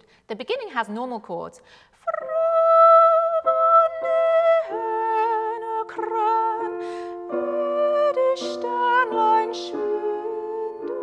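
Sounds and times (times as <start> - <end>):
woman singing with vibrato: 2.0 - 11.0
grand piano chords: 2.4 - 11.0.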